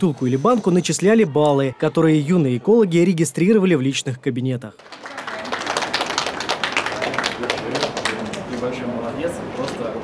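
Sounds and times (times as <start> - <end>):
small group applauding: 4.8 - 8.8.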